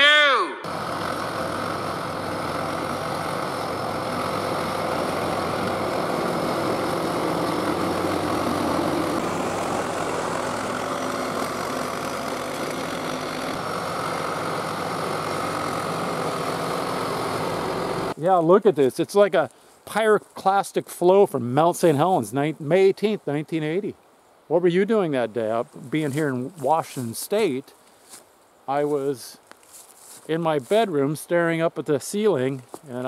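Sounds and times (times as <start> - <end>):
bulldozer diesel engine under load: 0.7 - 18.2.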